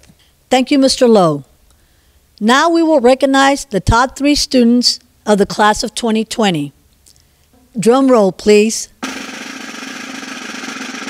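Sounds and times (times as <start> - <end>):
snare drum roll: 9.0 - 11.0.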